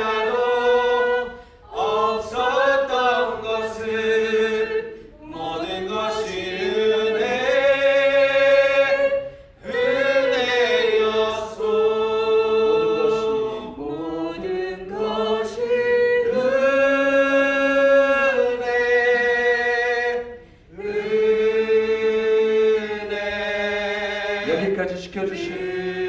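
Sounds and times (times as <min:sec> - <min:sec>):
worship team singing: 0:00.0 - 0:26.0.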